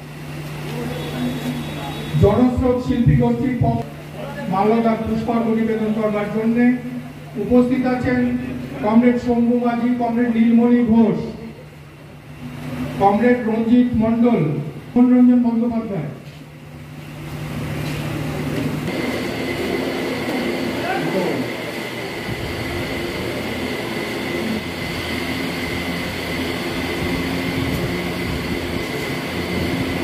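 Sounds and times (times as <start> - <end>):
electric fans whirring: 0.0 - 30.0
low hum: 18.2 - 30.0.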